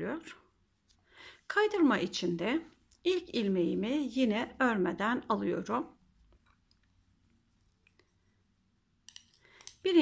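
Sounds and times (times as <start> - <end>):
person speaking: 1.4 - 7.9.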